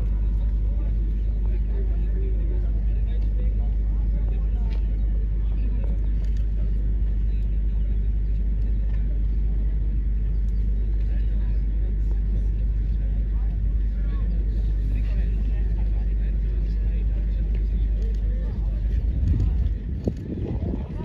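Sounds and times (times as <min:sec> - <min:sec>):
low outdoor rumble: 0:00.0 - 0:21.0.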